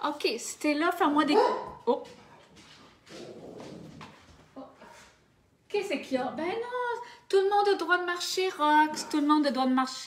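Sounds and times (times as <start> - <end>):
dog grumbling: 3.1 - 4.0.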